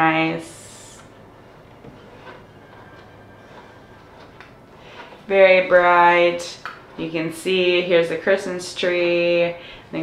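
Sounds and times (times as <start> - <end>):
steady low hum: 0.0 - 10.0
fabric rustling: 1.1 - 7.0.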